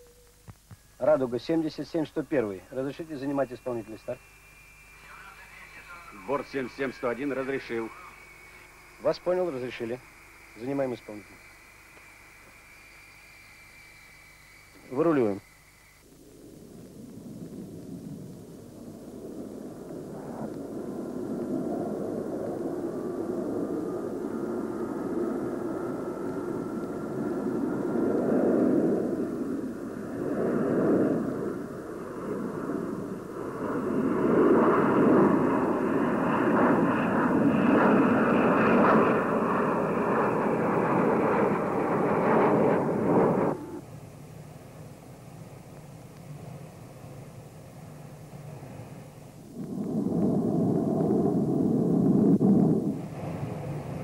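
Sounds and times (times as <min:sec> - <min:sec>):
engine whine: 0:00.0 - 0:54.0
quiet hum: 0:00.0 - 0:54.0
jet engines roaring: 0:01.6 - 0:54.0.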